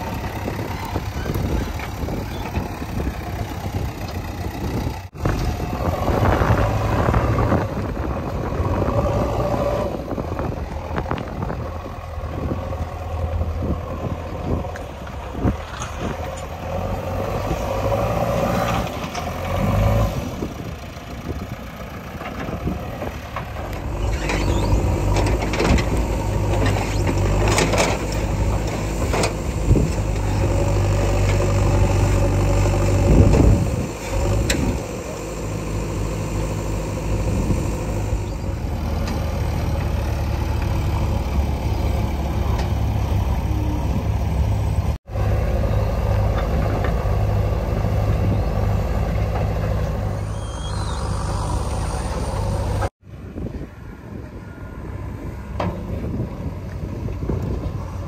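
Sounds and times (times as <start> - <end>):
diesel engine droning under load: 0.0 - 58.0.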